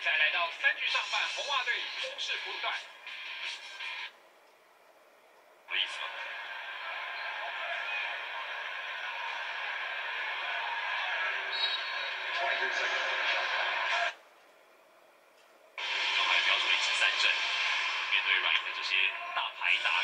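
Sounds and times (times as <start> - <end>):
arena noise on television: 0.0 - 20.0
voices on television: 0.0 - 20.0.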